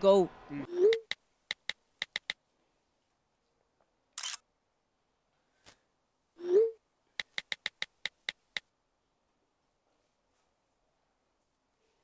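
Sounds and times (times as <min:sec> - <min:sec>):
camera shutter snap: 0:04.2 - 0:04.4.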